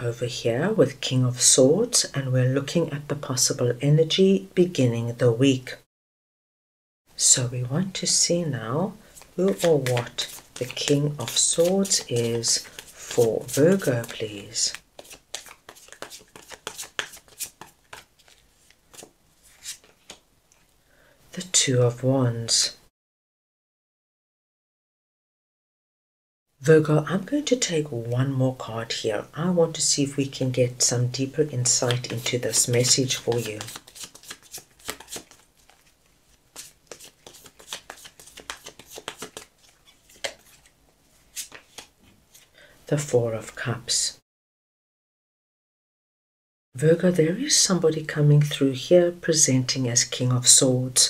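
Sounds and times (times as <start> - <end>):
cards being shuffled: 9.1 - 20.2, 31.6 - 42.5.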